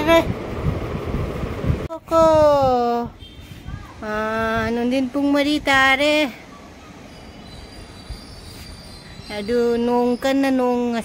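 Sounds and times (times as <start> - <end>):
woman's drawn-out voice: 0.0 - 0.3, 1.9 - 6.4
city background noise: 0.0 - 11.0.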